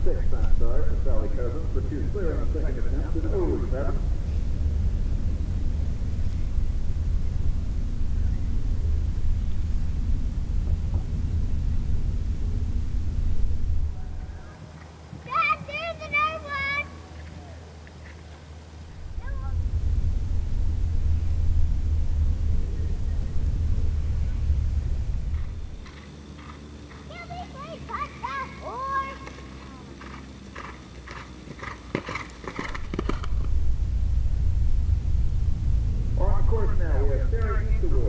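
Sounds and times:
wind buffeting microphone: 0.0 - 16.9, 18.8 - 38.0
distant voices: 0.0 - 38.0.

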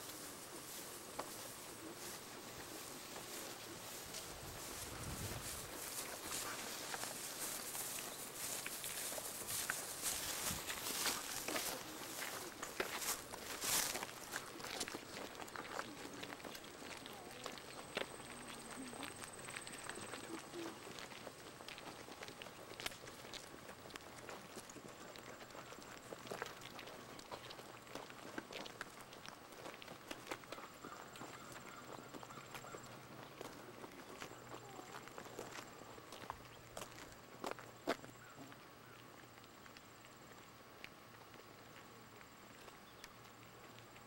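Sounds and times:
footsteps on paved road: 0.0 - 44.0.

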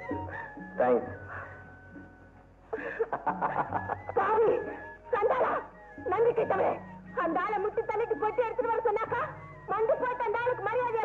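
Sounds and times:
film background music: 0.0 - 11.0.

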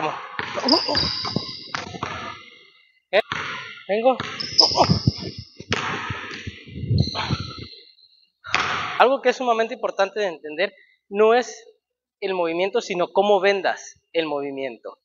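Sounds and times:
basketball bouncing on hardwood floor: 0.4 - 2.4, 3.3 - 7.6.

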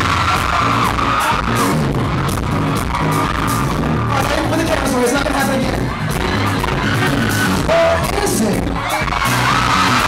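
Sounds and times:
crowd voices: 0.0 - 10.0
live rock band playing: 0.0 - 10.0.

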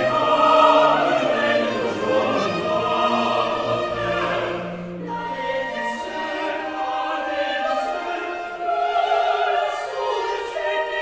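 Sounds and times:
chorus singing: 0.0 - 11.0
orchestra playing: 0.0 - 11.0.

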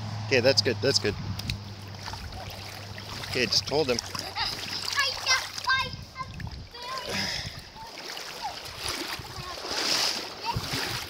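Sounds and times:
water splashing in a stream: 1.4 - 11.0
child calling out: 4.4 - 8.6.

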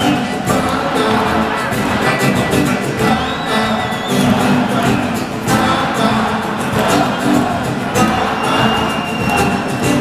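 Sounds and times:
band playing acoustic guitars: 0.0 - 10.0.

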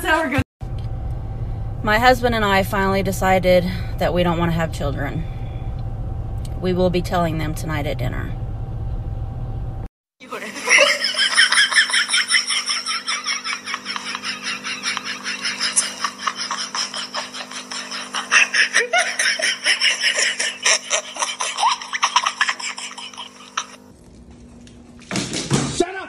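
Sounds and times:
low hum: 0.1 - 9.9
person laughing hard: 10.3 - 23.8.

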